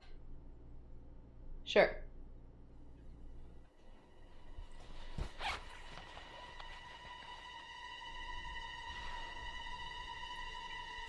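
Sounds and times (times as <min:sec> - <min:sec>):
jacket fabric swish: 0:04.8 - 0:07.2.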